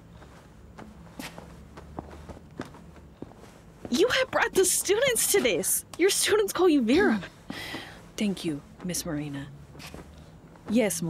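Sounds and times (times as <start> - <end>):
coat and scarf rustling: 0.0 - 11.0
faint low hum: 0.0 - 11.0
soft footsteps: 0.0 - 11.0.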